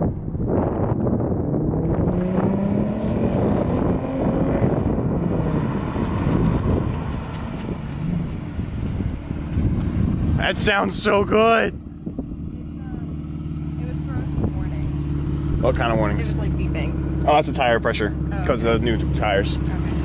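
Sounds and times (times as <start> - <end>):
wind buffeting microphone: 0.0 - 16.9
car exhaust accelerating: 0.0 - 20.0.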